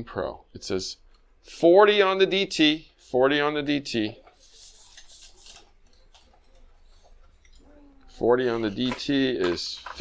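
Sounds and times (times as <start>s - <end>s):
faint clicks and rustles: 4.2s - 10.0s.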